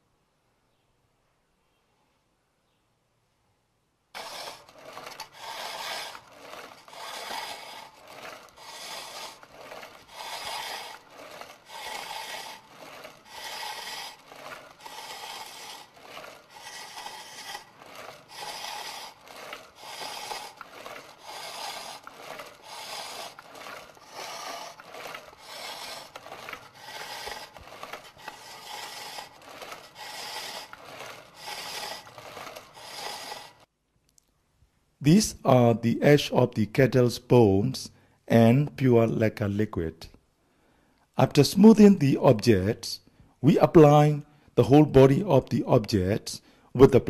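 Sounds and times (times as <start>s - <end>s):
knife scraping lacquer: 4.2s - 33.7s.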